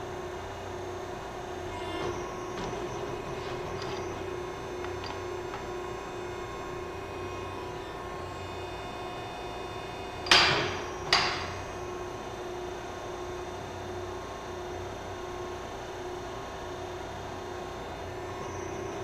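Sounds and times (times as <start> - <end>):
hydraulic pump humming: 1.4 - 13.5.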